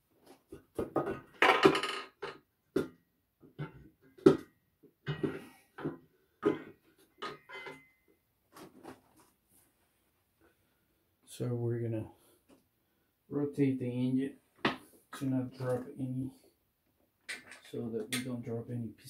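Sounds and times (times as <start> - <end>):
metal knocking and clanking: 5.1 - 7.9.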